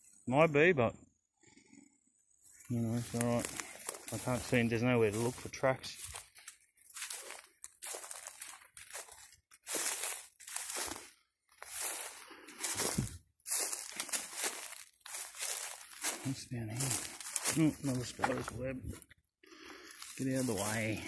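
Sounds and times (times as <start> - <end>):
footsteps crunching through dry leaves: 2.5 - 21.0.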